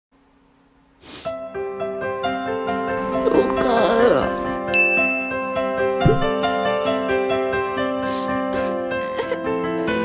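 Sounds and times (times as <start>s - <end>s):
soft piano music: 1.3s - 10.0s
bright ding: 4.7s - 6.3s.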